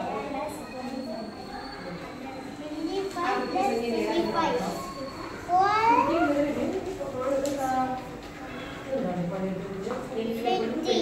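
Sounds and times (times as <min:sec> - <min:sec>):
young child speaking: 0:02.2 - 0:06.4, 0:10.5 - 0:11.0.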